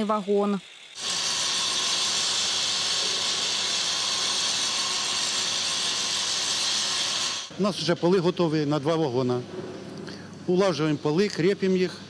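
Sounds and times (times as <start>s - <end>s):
angle grinder grinding metal: 0.0s - 7.5s.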